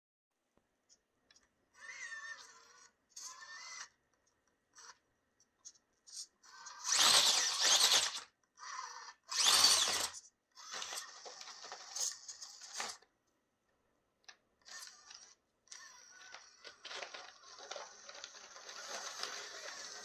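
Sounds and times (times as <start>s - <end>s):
electric motor and gears whining: 6.5s - 13.0s, 14.6s - 20.0s.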